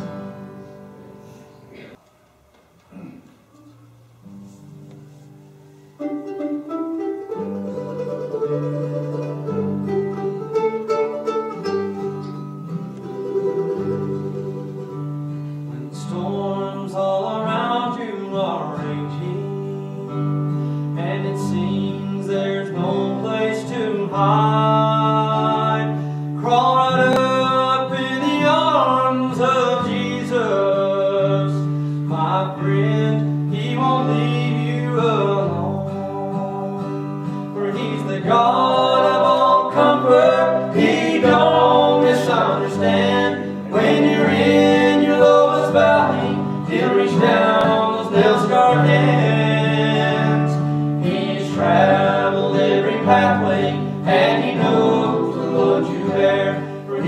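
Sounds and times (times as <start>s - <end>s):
mandolin picking: 4.4s - 16.8s, 19.7s - 57.0s
person singing: 15.6s - 57.0s.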